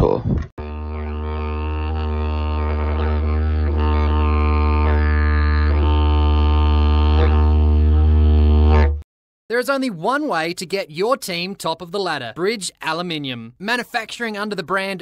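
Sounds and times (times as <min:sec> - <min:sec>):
didgeridoo drone: 0:00.6 - 0:09.0.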